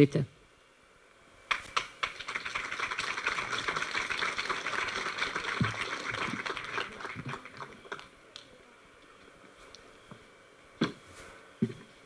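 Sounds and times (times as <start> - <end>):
audience applauding: 1.5 - 8.5.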